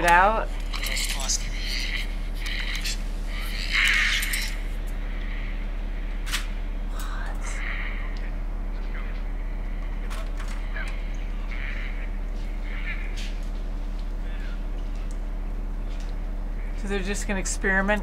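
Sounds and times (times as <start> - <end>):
low electrical hum: 0.0 - 18.0
muffled tv voices: 0.0 - 18.0.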